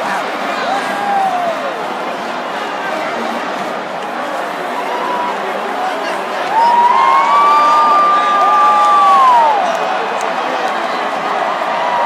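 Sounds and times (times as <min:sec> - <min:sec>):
stadium crowd cheering: 0:00.0 - 0:12.0
high-pitched whoop: 0:00.7 - 0:01.7, 0:06.5 - 0:09.6.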